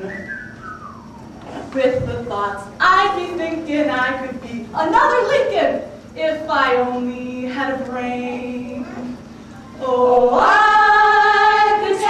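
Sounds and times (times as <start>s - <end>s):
whistled note sliding down: 0.0s - 1.2s.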